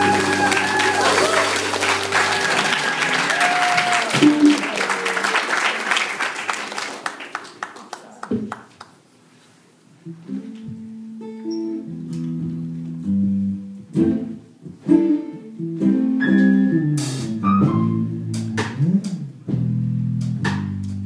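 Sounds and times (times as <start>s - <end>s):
plucked guitar: 10.0s - 21.0s
bass line: 15.6s - 21.0s.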